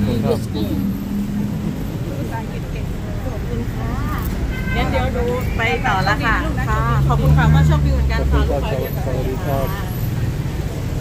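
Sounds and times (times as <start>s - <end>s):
people talking quietly: 0.0s - 11.0s
rumble of passing traffic: 0.0s - 11.0s.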